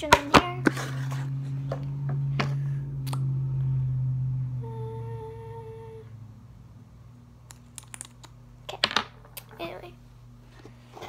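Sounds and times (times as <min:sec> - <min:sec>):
low background hum: 0:00.0 - 0:11.0
person humming: 0:04.5 - 0:06.2.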